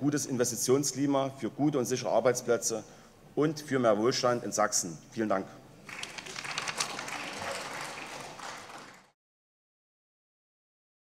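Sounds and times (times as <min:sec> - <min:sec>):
crowd applause: 0:05.9 - 0:09.2.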